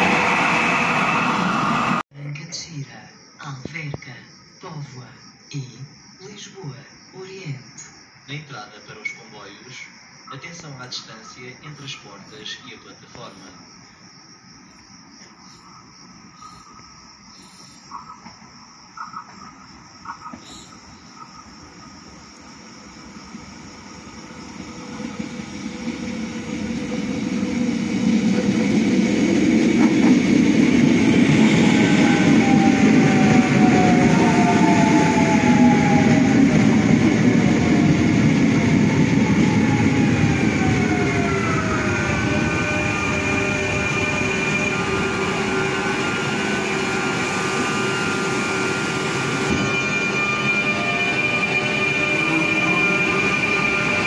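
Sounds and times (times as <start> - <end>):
electric train rumble: 0.0 - 2.0, 9.9 - 54.0
train whine and hum: 0.0 - 2.1, 11.3 - 54.0.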